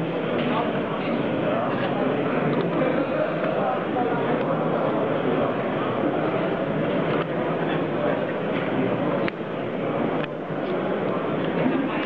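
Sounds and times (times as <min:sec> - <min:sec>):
babble of many voices: 0:00.0 - 0:12.0.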